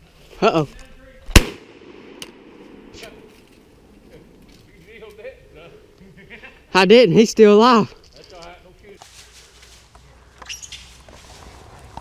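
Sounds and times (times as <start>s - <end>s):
rifle shot with echo: 1.3s - 3.3s.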